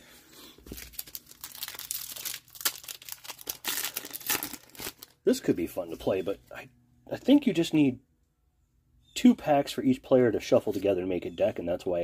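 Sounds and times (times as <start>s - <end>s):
foil wrapper crinkling and tearing: 0.6s - 5.3s.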